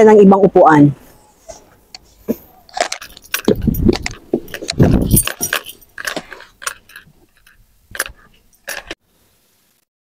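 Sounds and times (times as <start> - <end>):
knocks and rustles: 2.3 - 9.0
light clinks: 3.0 - 9.0
heavy low thuds: 3.4 - 5.5.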